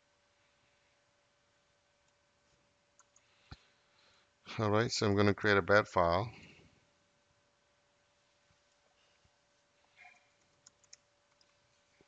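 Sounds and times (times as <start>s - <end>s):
computer mouse and keyboard clicks: 3.0s - 3.6s, 9.9s - 11.6s.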